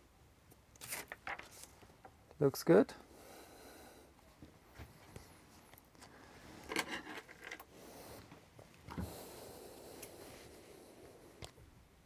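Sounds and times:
handling clicks and scraping: 5.7s - 7.7s.

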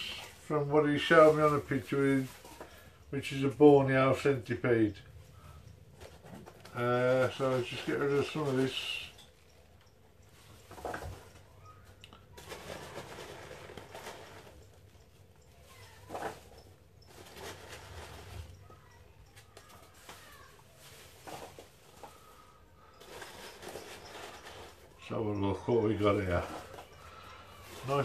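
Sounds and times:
paper and packing peanuts rustling: 0.0s - 9.5s, 10.3s - 28.0s.

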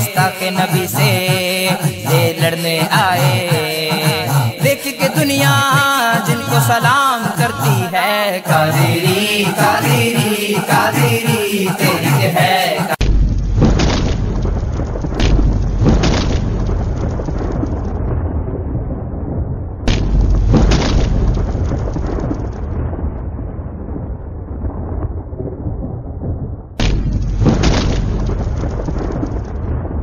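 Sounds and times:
steady rain: 13.0s - 26.4s
deep rolling thunder: 13.0s - 30.0s
sharp thunder cracks: 13.0s - 30.0s.

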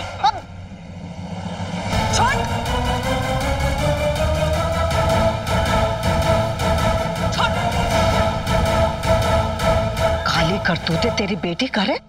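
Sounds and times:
low rumbling dramatic score: 0.0s - 12.0s.

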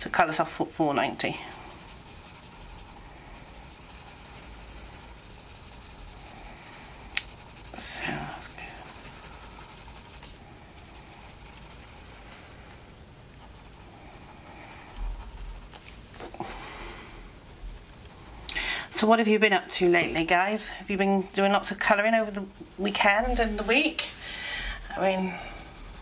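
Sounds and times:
coloured pencil shading on paper: 0.1s - 12.6s, 13.4s - 15.8s, 17.4s - 26.0s.

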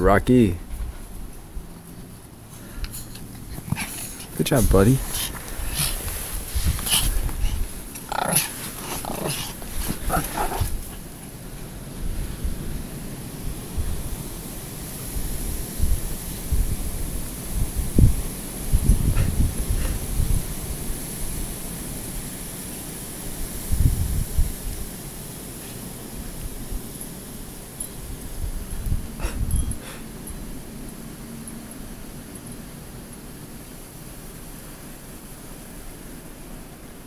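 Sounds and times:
rustling: 0.6s - 12.9s
dogs whining: 6.9s - 11.0s.

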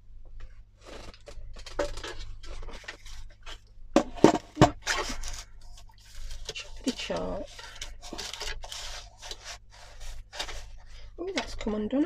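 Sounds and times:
paper rustling: 0.8s - 11.8s.

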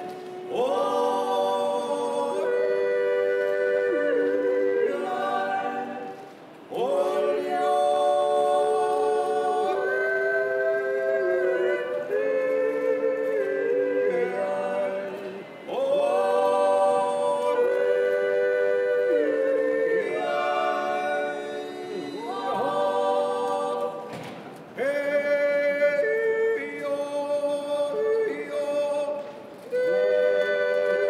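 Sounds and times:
people yodelling in harmony: 0.0s - 24.2s, 24.8s - 31.0s.

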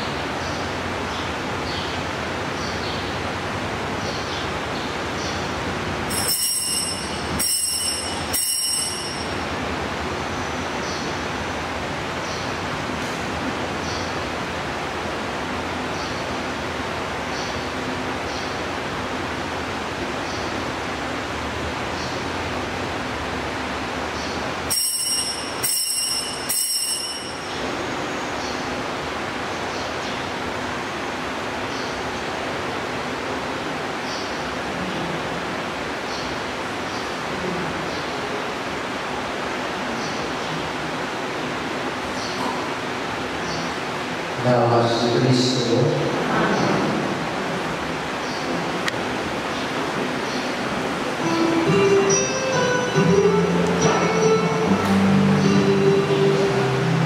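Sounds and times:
small bell ringing: 6.1s - 9.5s, 24.7s - 27.7s.

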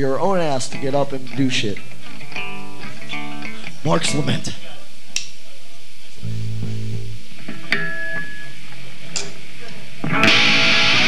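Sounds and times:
amplified guitar notes: 0.6s - 4.6s, 6.2s - 9.4s, 10.0s - 11.0s.

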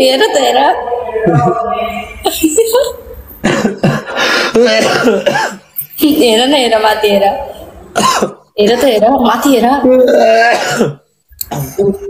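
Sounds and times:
person vocalising with gliding pitch: 0.0s - 2.5s.

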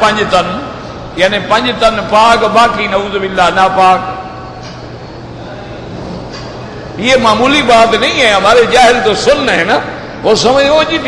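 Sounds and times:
low even hum: 0.0s - 11.0s.

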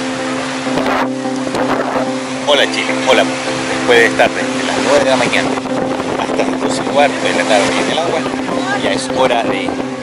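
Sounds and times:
motorboat engine humming: 0.0s - 10.0s.

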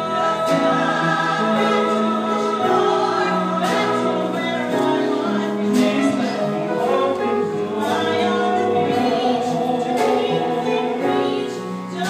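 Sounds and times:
keyboard accompaniment: 0.0s - 12.0s
people singing a duet: 0.0s - 12.0s.

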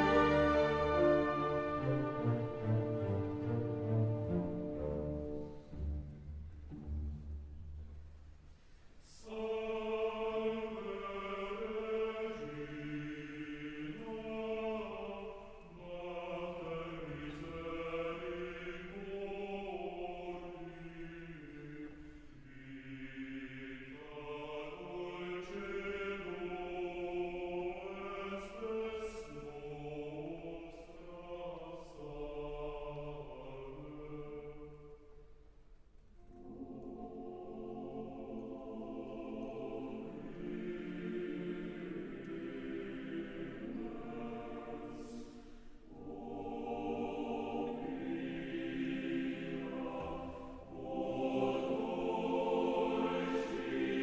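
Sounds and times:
opera chorus singing: 0.0s - 6.3s, 9.0s - 35.3s, 36.2s - 54.0s.

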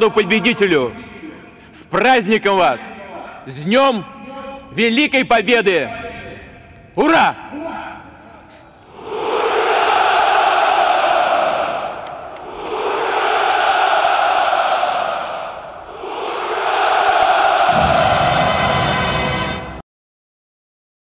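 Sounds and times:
soldiers shouting in unison: 12.6s - 18.7s.

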